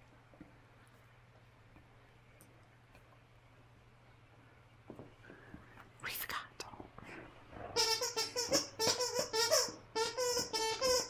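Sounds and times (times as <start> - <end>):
squeaky toy squeaking: 7.8 - 11.0.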